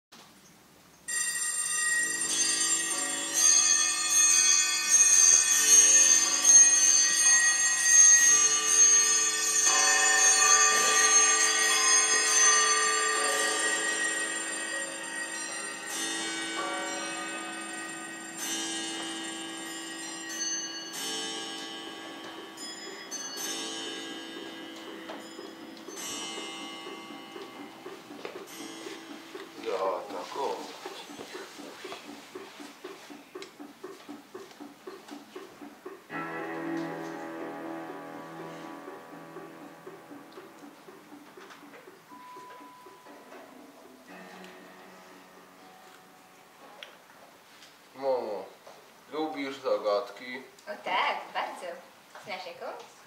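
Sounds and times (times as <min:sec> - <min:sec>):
chiming bell tones: 0:01.1 - 0:31.4, 0:42.0 - 0:46.8.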